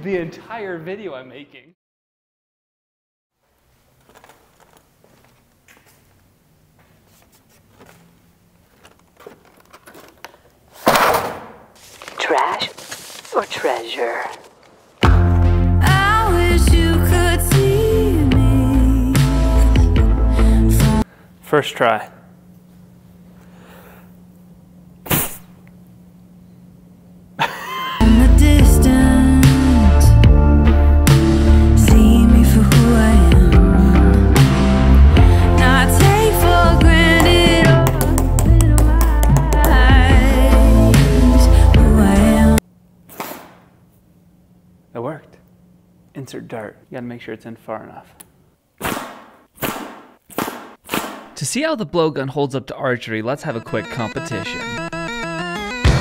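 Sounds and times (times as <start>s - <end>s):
faint breath in: 23.4s - 24.2s
sharp puff through blowgun: 25.0s - 25.6s, 43.1s - 43.6s, 48.8s - 51.4s.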